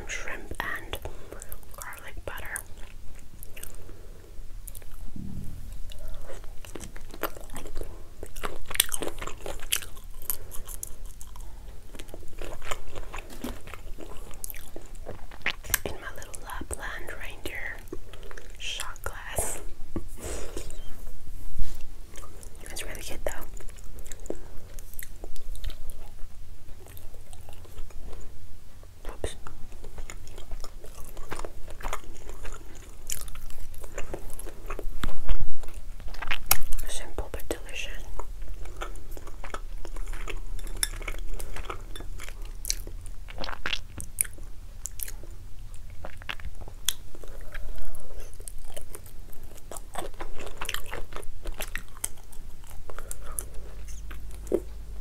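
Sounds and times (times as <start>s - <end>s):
close chewing mouth sounds: 0.0s - 21.0s, 21.6s - 55.0s.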